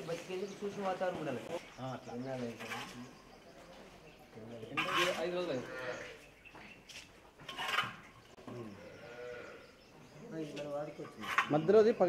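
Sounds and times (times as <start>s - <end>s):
farm animal bleating: 4.8s - 6.2s, 8.5s - 9.8s.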